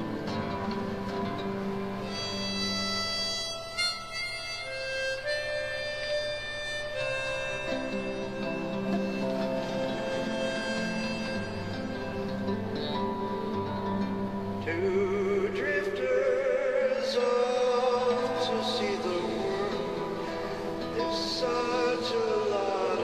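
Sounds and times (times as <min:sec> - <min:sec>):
harmonica melody: 0:00.0 - 0:23.0
nylon-string guitar: 0:00.0 - 0:23.0.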